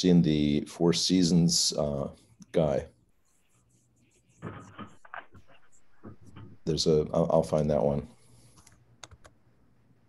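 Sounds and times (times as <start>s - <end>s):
faint computer keyboard keystrokes: 8.6s - 9.4s.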